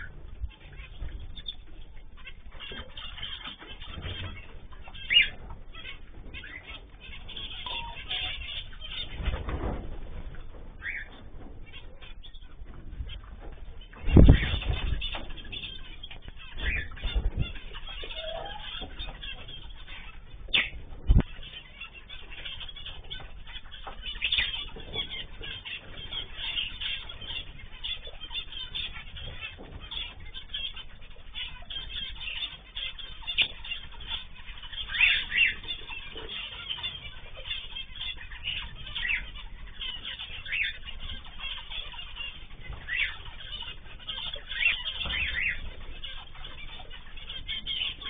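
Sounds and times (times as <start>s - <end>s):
birds chirping: 0.0s - 48.0s
cage birds calling: 0.0s - 48.0s.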